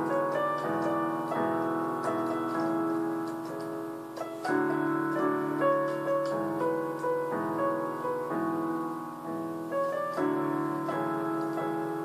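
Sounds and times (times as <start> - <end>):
keyboard piano chords: 0.0 - 12.0.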